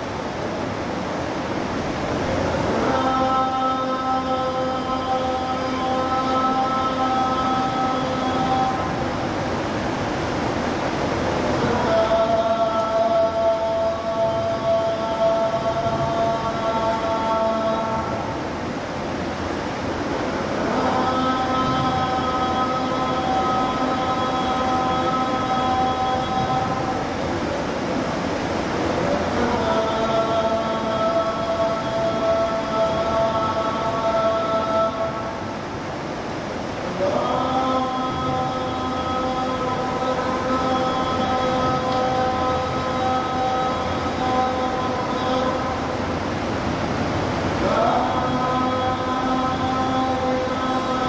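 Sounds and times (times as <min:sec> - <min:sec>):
room noise hiss: 0:00.0 - 0:51.0
steady droning hum: 0:00.0 - 0:51.0
person chanting recitation: 0:01.9 - 0:51.0.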